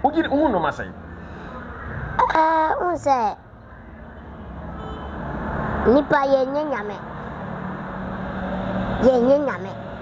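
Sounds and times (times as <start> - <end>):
motor vehicle rumbling: 0.0 - 10.0.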